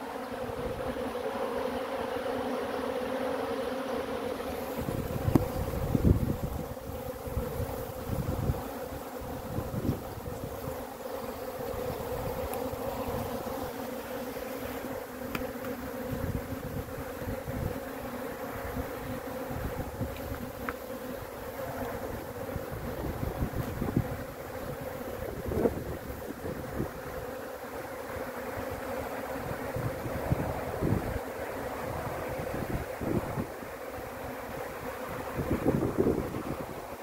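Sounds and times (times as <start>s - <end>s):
bees buzzing: 0.0s - 37.0s.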